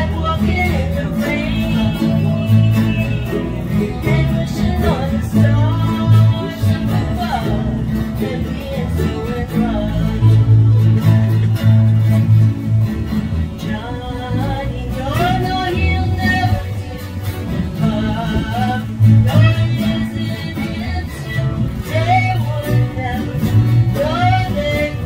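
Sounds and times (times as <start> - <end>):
woman singing: 0.0 - 11.0, 13.6 - 25.0
acoustic guitar strumming: 0.0 - 25.0.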